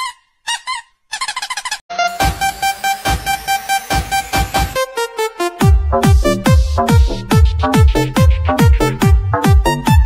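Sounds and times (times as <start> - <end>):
high-pitched honking squeaks: 0.0 - 4.9.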